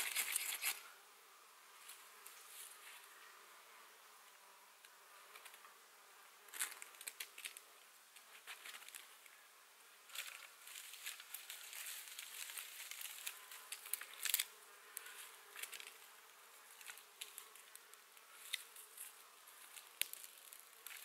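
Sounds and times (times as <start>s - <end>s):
dry wood shavings rustling: 0.0s - 0.9s, 6.4s - 9.4s, 10.0s - 21.0s
flying insect buzzing: 0.0s - 21.0s.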